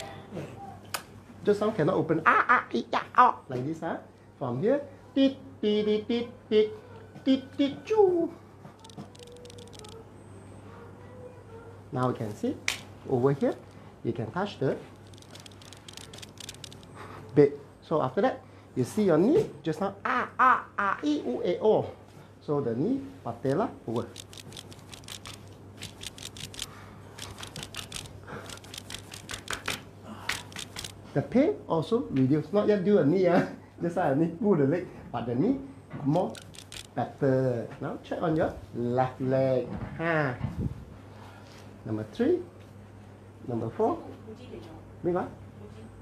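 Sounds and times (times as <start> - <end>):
hands rubbing on clothing: 24.1 - 30.9.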